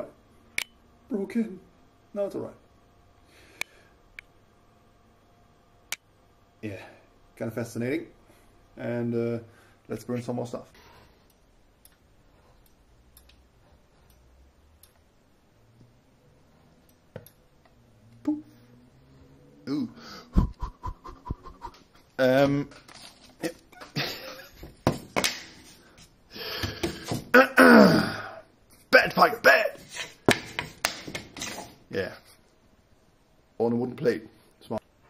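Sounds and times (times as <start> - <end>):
faint low hum: 0.0 - 30.2.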